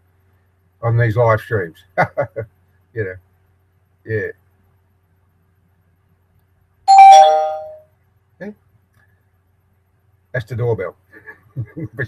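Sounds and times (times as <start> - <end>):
two-note doorbell chime: 6.9 - 7.8.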